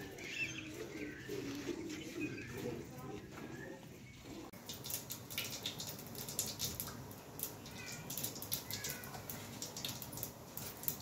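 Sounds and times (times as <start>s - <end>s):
seeds crackling in hot oil: 4.5s - 11.0s.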